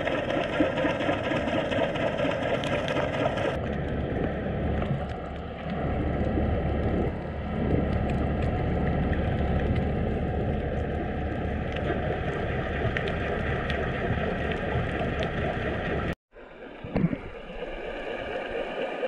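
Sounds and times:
underwater rumble: 0.0 - 19.0.

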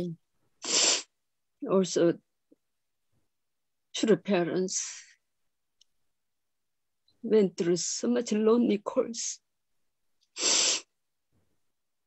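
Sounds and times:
woman speaking: 0.0 - 0.2, 1.6 - 2.2, 4.0 - 5.2, 7.2 - 9.4.

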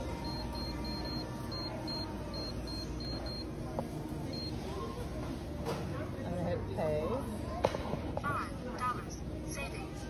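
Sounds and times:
keypad beeps: 0.2 - 3.5, 4.3 - 4.5.

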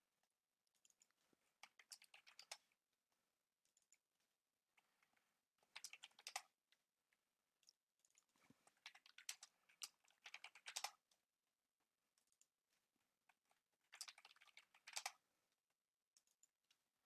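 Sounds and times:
typing on computer keyboard: 0.9 - 2.6, 5.7 - 6.5, 8.8 - 11.0, 14.0 - 15.2.

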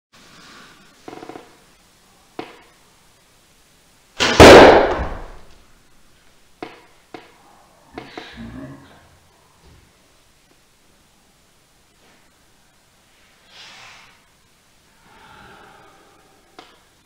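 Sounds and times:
arrow hitting target: 4.2 - 5.5.

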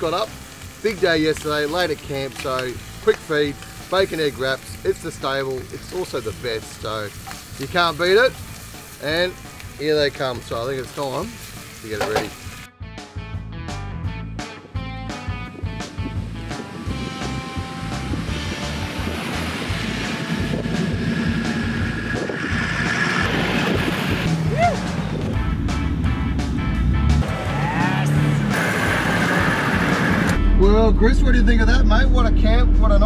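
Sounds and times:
background music with a beat: 11.3 - 22.9, 24.0 - 30.8
vehicle driving through soft sand: 15.7 - 30.4
vehicle drone from inside cab: 19.0 - 24.3.

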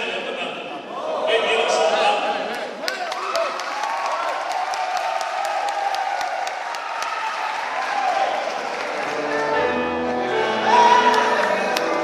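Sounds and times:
audience applauding: 2.6 - 12.0.

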